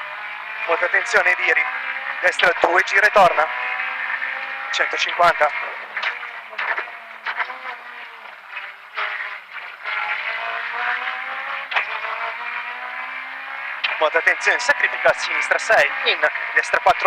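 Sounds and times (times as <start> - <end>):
rally car engine from inside: 0.0 - 17.0.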